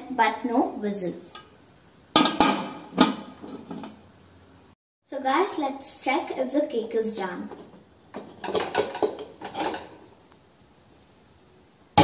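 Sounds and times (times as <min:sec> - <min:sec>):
metal pot lid clunks: 0:02.1 - 0:04.0.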